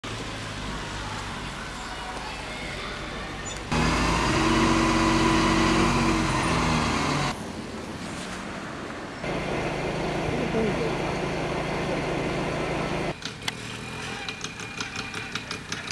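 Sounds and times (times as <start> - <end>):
diesel engines idling: 0.0 - 8.0, 8.9 - 15.9
road noise: 0.0 - 15.9.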